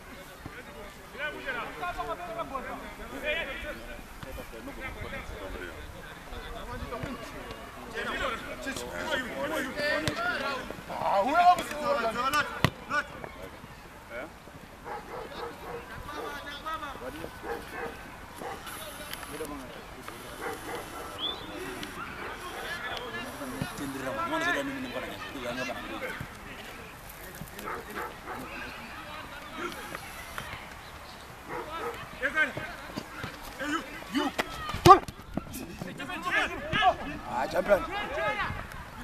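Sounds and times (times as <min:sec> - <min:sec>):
distant players shouting: 0:14.9 - 0:26.9, 0:31.4 - 0:39.0.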